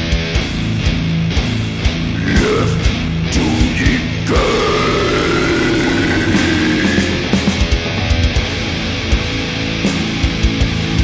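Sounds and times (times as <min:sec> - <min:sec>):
distorted electric guitar chord: 0:02.1 - 0:08.0.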